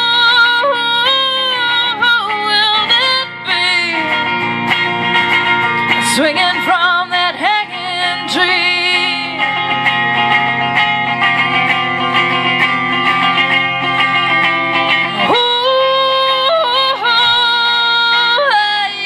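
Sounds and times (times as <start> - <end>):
woman singing: 0.0 - 11.8, 13.2 - 19.0
electric guitar chords: 0.0 - 19.0.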